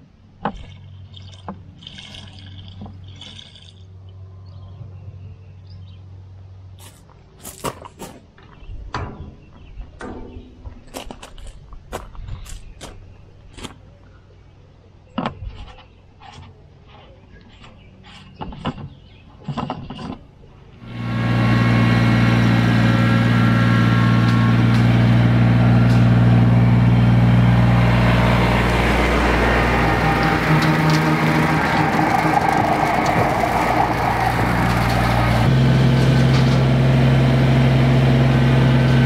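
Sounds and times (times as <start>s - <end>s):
fuel running into tank: 0.4s - 4.0s.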